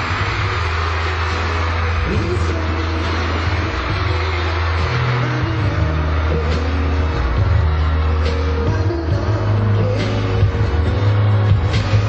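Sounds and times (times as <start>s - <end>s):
loud live pop music: 0.0s - 12.0s.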